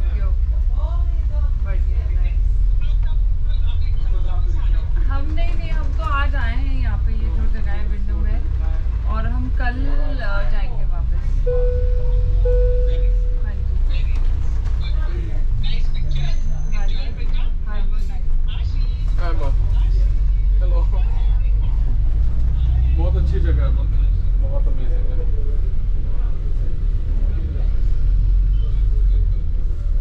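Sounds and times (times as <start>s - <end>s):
bus engine low rumble: 0.0s - 30.0s
people talking: 0.0s - 30.0s
steady tone: 11.4s - 13.8s.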